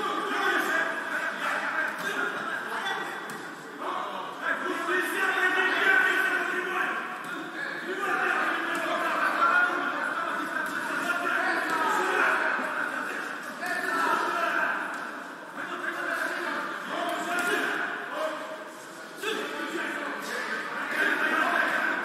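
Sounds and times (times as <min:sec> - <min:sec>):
voices talking and calling out: 0:00.0 - 0:22.0.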